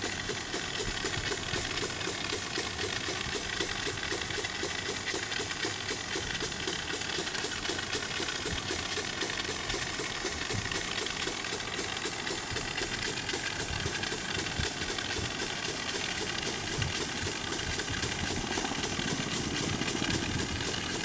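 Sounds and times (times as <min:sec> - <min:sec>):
pulsing hiss of foam sprayer: 0:00.0 - 0:21.0.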